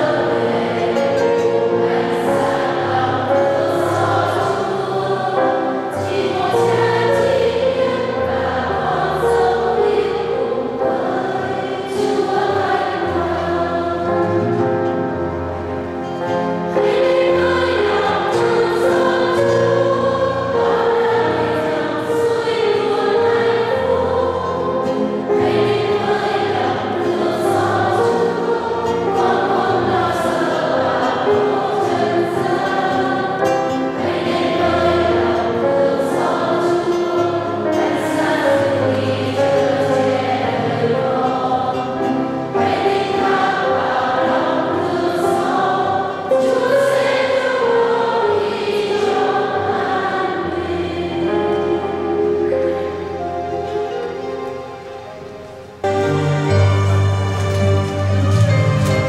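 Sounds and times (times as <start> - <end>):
acoustic guitar: 0.0 - 59.0
choir singing a hymn: 0.0 - 59.0
piano: 0.0 - 59.0.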